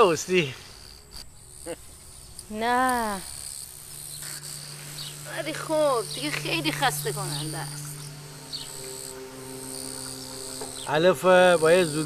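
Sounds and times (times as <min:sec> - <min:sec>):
crickets chirping: 0:00.0 - 0:12.0
low steady hum: 0:01.3 - 0:12.0.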